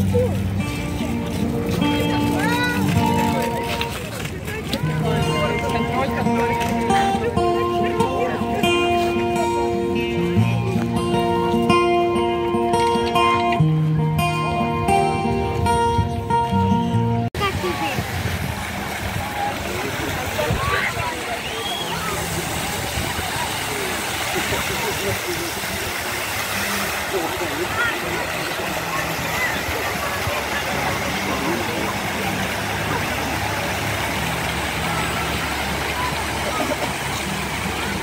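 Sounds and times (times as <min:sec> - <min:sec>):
fountain water splashing: 0:00.0 - 0:15.1, 0:17.4 - 0:38.0
crowd chatter: 0:00.0 - 0:38.0.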